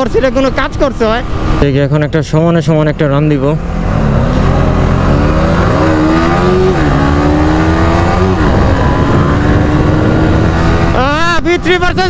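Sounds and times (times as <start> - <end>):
motorcycle engine accelerating: 3.3 - 11.7.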